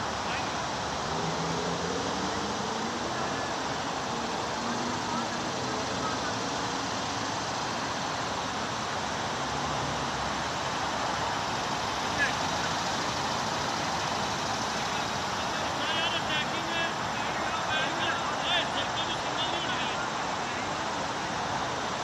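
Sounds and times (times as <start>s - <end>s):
distant voices: 0.0s - 22.0s.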